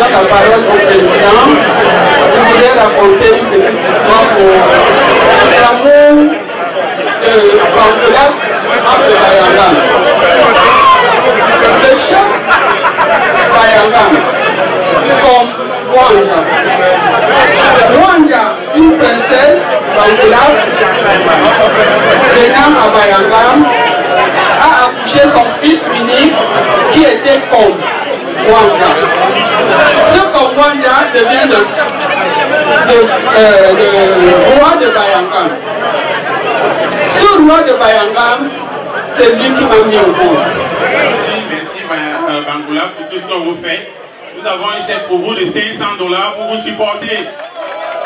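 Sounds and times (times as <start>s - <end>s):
woman speaking into a microphone: 0.0s - 1.7s, 2.3s - 6.4s, 7.2s - 9.9s, 11.8s - 12.5s, 13.5s - 14.3s, 15.2s - 16.6s, 17.8s - 20.6s, 22.3s - 23.9s, 24.6s - 29.0s, 30.0s - 31.8s, 32.9s - 35.6s, 37.1s - 40.5s
crowd chatter: 0.0s - 48.0s.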